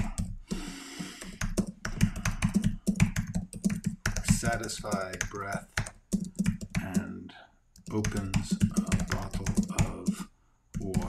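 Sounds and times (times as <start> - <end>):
typing on computer keyboard: 0.0 - 7.2, 7.8 - 11.0.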